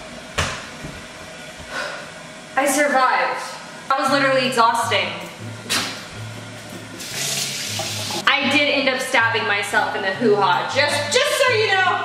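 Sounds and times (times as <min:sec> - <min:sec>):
water running from tap: 0:06.6 - 0:08.3.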